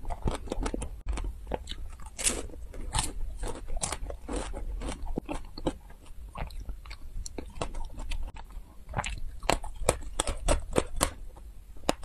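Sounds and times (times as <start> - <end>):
crunchy snack chewing: 0.0 - 11.2.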